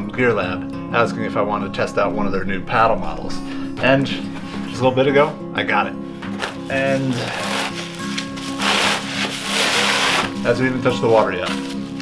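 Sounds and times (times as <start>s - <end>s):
acoustic guitar music: 0.0s - 12.0s
bubble wrap rustling: 6.3s - 12.0s.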